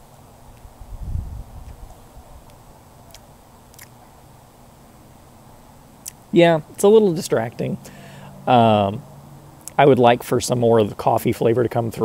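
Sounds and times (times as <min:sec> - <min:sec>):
soft exhaled breath: 0:07.8 - 0:08.4.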